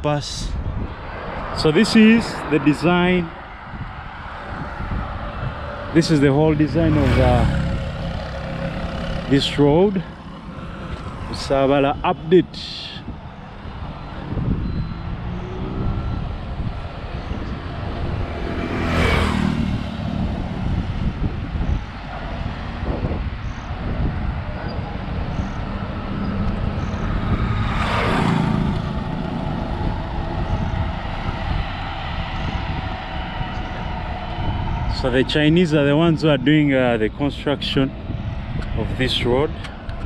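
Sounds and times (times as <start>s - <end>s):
vehicles whooshing past: 0.0s - 40.0s
wind and road rumble: 0.0s - 40.0s.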